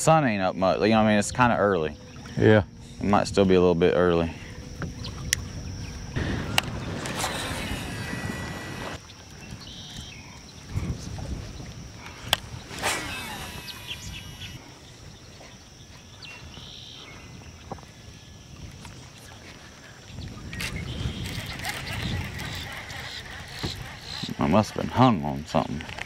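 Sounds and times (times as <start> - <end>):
water noise: 0.0 - 16.6, 17.3 - 26.0
faint high whine: 0.0 - 22.9
wind noise: 0.0 - 26.0
bird chirps: 7.9 - 10.7, 12.6 - 15.0.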